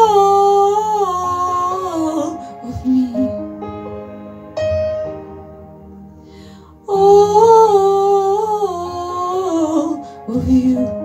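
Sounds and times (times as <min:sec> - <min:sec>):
woman singing a long wordless note: 0:00.0 - 0:03.6, 0:06.8 - 0:11.0.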